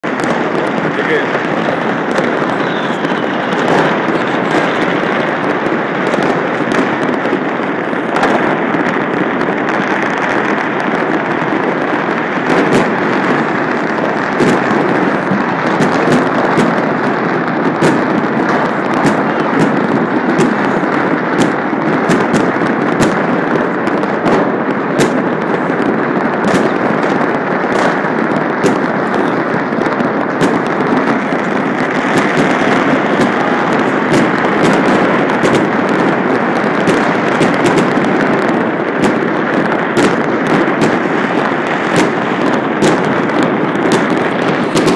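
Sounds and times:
fireworks crackling and banging: 0.0s - 44.9s.

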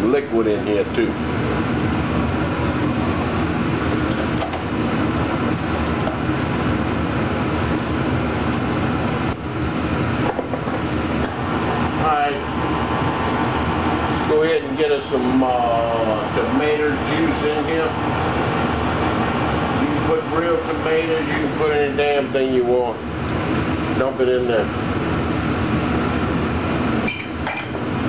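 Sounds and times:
kitchen exhaust fan humming: 0.0s - 28.0s.

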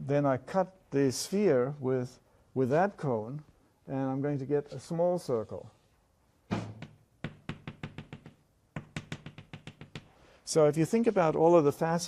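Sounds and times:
chalk tapping on blackboard: 6.8s - 10.2s.

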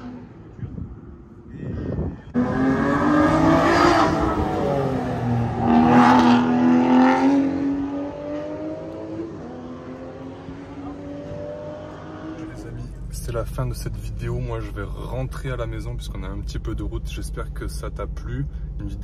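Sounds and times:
sports car engine accelerating: 2.3s - 17.0s.

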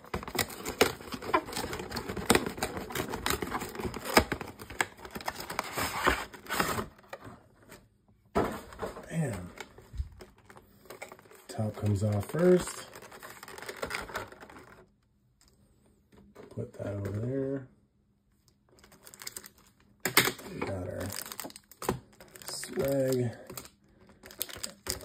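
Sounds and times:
foil packs crinkling: 0.0s - 6.9s, 9.1s - 14.8s, 18.8s - 25.0s.

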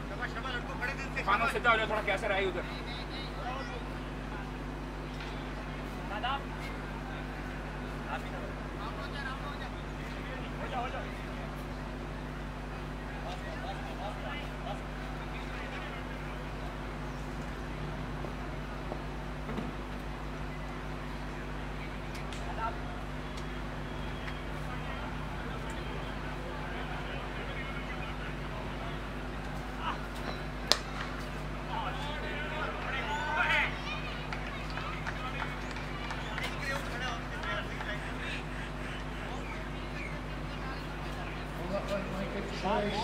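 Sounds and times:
faint distant voices: 0.0s - 43.0s
cricket bat striking ball: 30.6s - 31.2s.

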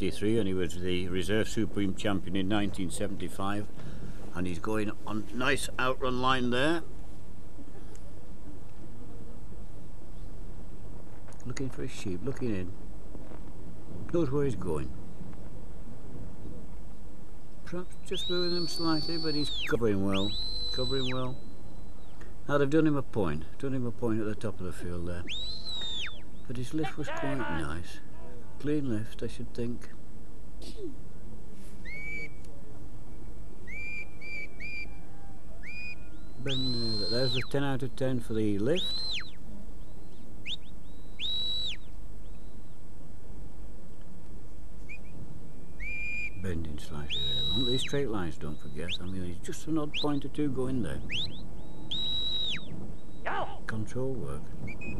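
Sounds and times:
low background rumble: 0.0s - 54.9s
handler's whistle commands: 18.1s - 21.2s, 36.5s - 37.5s, 47.1s - 47.9s.

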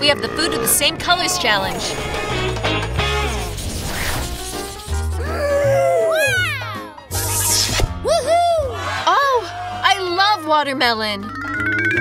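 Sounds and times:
background music with bass: 0.0s - 9.8s
voices exclaiming ooh: 5.2s - 6.9s, 8.1s - 9.6s.

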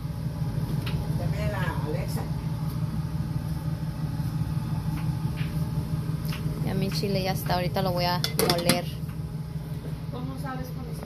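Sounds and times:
low rumbling hum: 0.0s - 11.0s.

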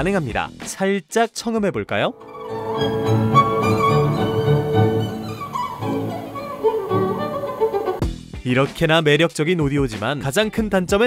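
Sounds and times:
violin and cello music: 2.2s - 8.0s.

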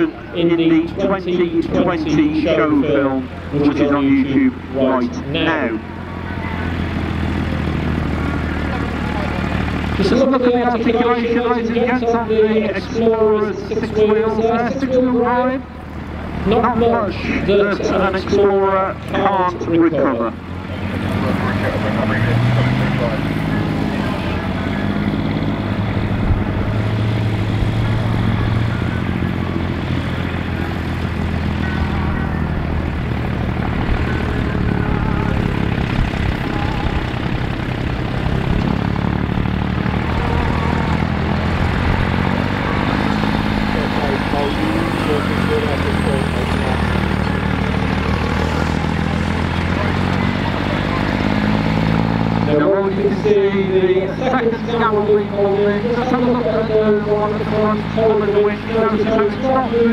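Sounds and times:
truck engine under load: 0.0s - 59.9s.

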